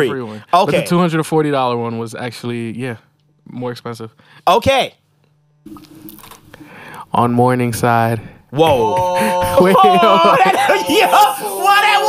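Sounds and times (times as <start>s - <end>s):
breathing: 4.2s - 4.5s, 6.5s - 7.1s.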